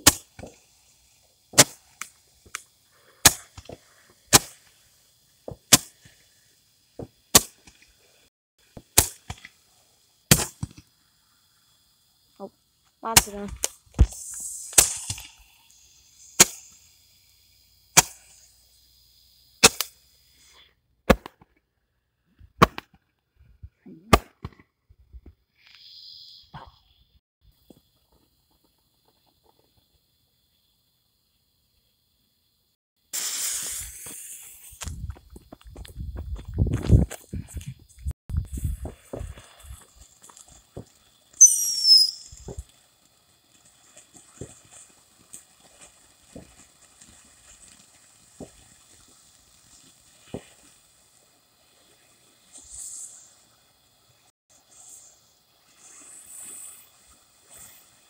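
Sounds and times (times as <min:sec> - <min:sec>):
hiss: 0:00.0 - 0:20.9, 0:25.6 - 0:35.4, 0:37.2 - 0:58.0
firework reports: 0:13.0 - 0:16.8, 0:33.1 - 0:34.9
footsteps crunching on gravel: 0:34.8 - 0:37.8
falling whistle: 0:41.4 - 0:42.5.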